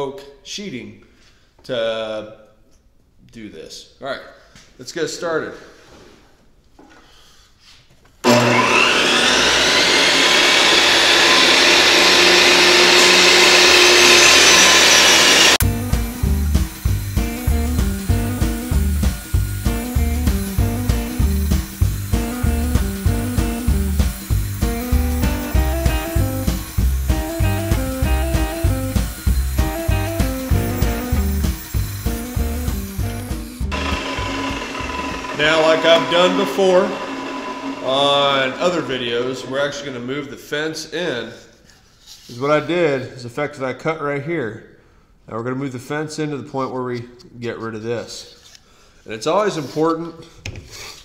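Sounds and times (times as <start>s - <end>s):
table saw motor whine: 8.2s - 40.0s
music with steady beat: 15.6s - 35.4s.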